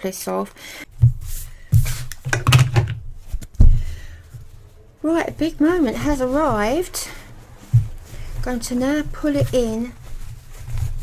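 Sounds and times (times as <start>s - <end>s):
dull thumps and knocks: 0.9s - 11.0s
fabric rustling: 0.9s - 11.0s.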